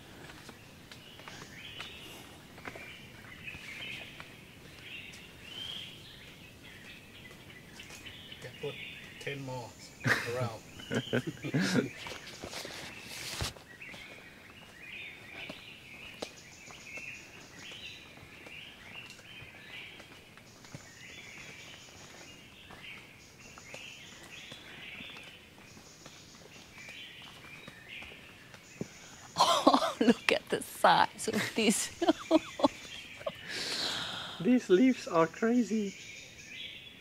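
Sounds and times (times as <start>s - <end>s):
birds chirping: 0.0s - 37.0s.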